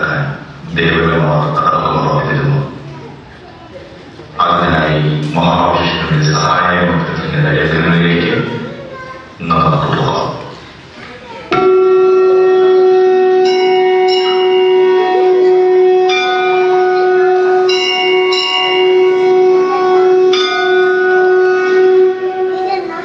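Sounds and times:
bells ringing: 11.5s - 23.0s
conch shell blown: 11.6s - 22.9s.

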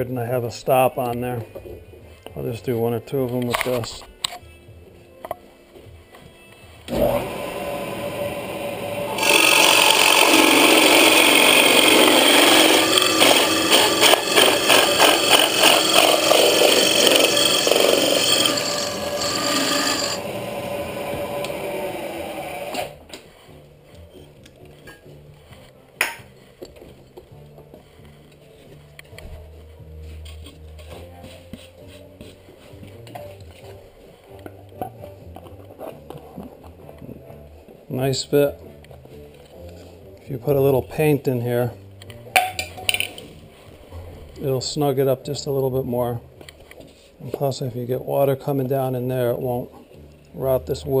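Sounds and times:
drill press running: 6.9s - 23.0s
hole saw cutting wood: 6.9s - 23.0s.

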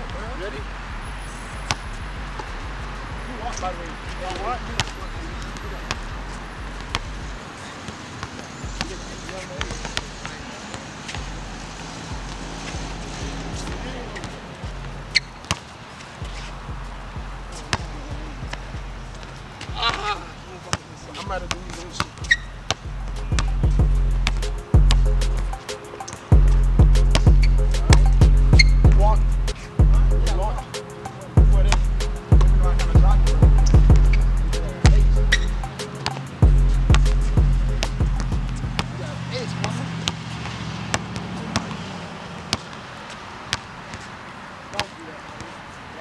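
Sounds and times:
music with deep bass beat: 0.0s - 7.4s, 8.6s - 10.3s, 11.1s - 15.2s, 16.2s - 20.4s, 21.3s - 39.1s
basketball bouncing on hard court: 1.6s - 2.6s, 4.3s - 11.5s, 13.6s - 15.7s, 21.3s - 25.0s, 27.1s - 29.0s, 34.9s - 39.0s, 39.6s - 41.8s, 42.5s - 42.9s, 43.5s - 44.1s.

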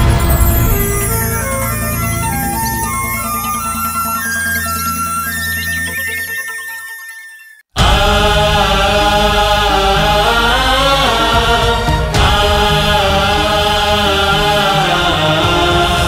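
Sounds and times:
electronic logo jingle: 0.0s - 16.0s
male choir singing song: 7.8s - 16.0s.

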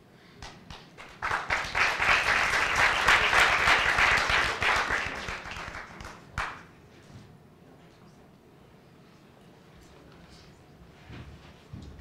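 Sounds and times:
audience applauding: 0.7s - 6.7s.

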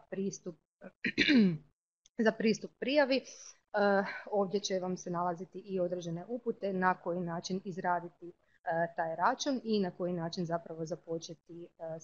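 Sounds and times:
woman speaking: 0.0s - 1.6s, 2.2s - 12.0s
woman clearing her throat: 1.1s - 1.6s.

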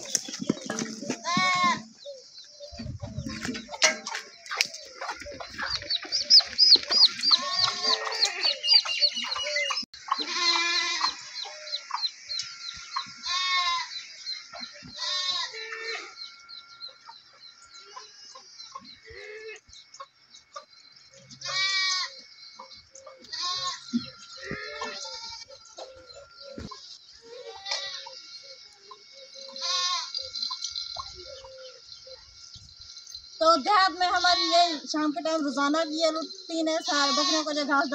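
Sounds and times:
small birds chirping: 0.0s - 37.9s
goats bleating: 0.7s - 1.9s, 7.1s - 8.7s, 10.1s - 11.2s, 13.2s - 13.9s, 14.9s - 16.1s, 21.4s - 22.2s, 23.2s - 25.8s, 27.3s - 28.2s, 29.6s - 30.1s, 36.9s - 37.7s.

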